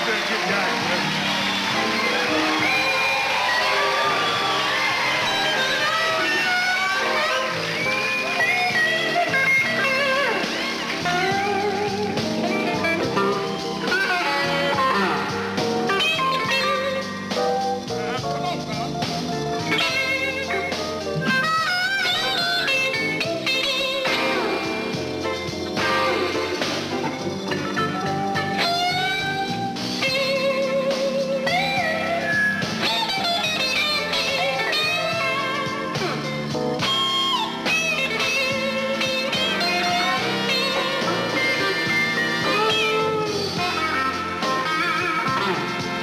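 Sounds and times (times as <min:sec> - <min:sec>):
electric blues guitar solo: 0:00.0 - 0:46.0
slow blues band backing: 0:00.0 - 0:46.0.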